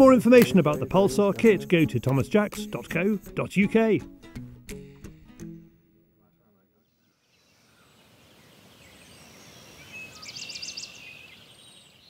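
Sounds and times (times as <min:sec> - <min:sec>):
steady outdoor hiss: 0:06.8 - 0:12.0.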